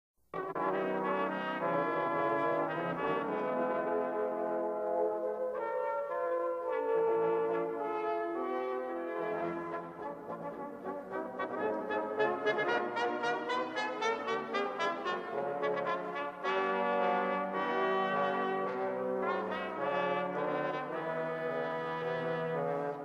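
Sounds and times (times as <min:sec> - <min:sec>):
brass ensemble playing chords: 0:00.4 - 0:23.0.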